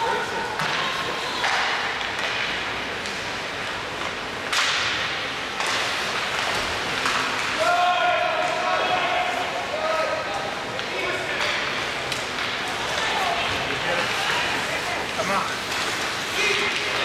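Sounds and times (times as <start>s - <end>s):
hockey puck crack with scrape: 0.5s - 7.7s, 10.7s - 17.0s.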